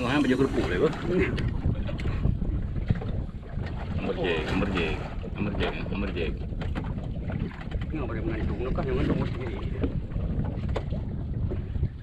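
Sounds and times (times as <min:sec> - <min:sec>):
sea washing around boat: 0:00.0 - 0:12.0
wind rumbling on microphone: 0:00.0 - 0:12.0.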